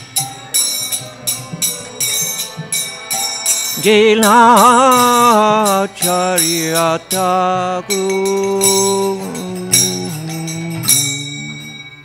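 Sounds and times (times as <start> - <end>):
small hand cymbals striking: 0.0 - 12.0
man singing devotional song: 1.0 - 12.0.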